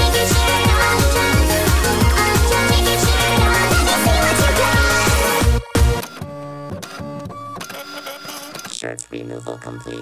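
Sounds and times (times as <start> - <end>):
heavy electronic beat: 0.0 - 5.6.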